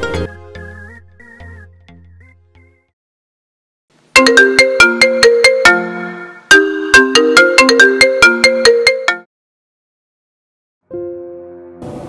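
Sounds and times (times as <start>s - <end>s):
mobile phone ringtone: 4.2s - 9.3s.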